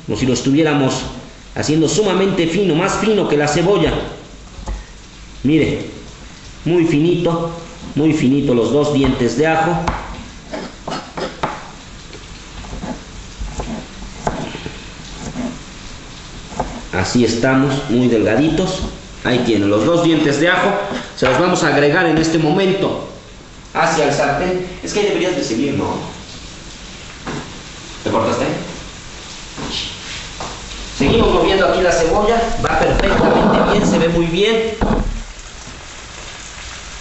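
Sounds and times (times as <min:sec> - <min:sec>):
steady background hiss: 0:00.0 - 0:37.0
onion sizzling in a pan: 0:09.6 - 0:21.4.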